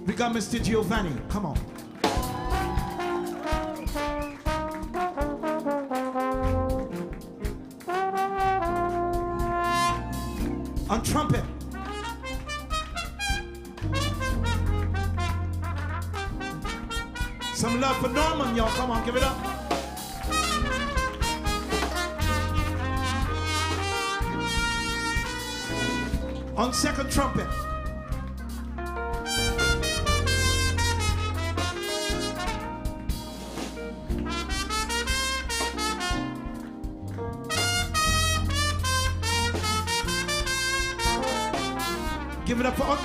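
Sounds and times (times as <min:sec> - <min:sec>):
live band playing: 0:00.0 - 0:43.0
walking bass: 0:00.0 - 0:43.0
light drums: 0:00.5 - 0:43.0
trumpet solo: 0:02.0 - 0:43.0.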